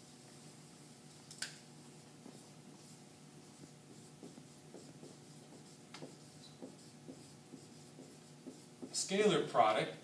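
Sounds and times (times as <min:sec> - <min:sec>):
marker writing on a whiteboard: 0:02.0 - 0:09.4.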